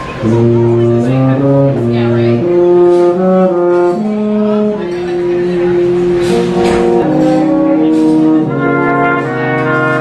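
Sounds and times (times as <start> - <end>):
brass quintet sustained chord: 0.2 - 10.0.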